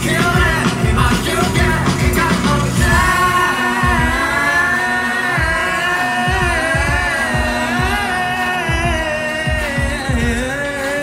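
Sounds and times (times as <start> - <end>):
live band playing: 0.0 - 11.0
kick drum beat: 3.8 - 4.3, 5.4 - 5.6, 6.3 - 8.0, 8.7 - 10.4.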